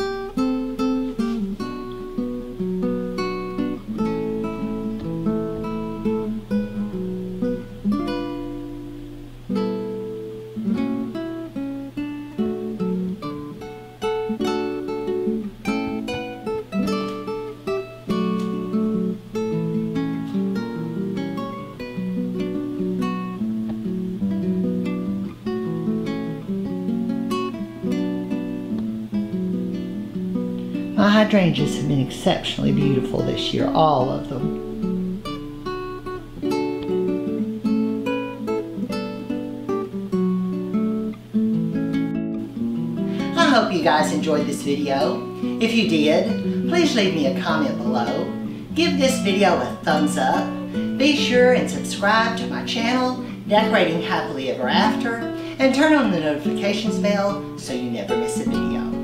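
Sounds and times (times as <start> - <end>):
acoustic guitar music: 0.0 - 59.0.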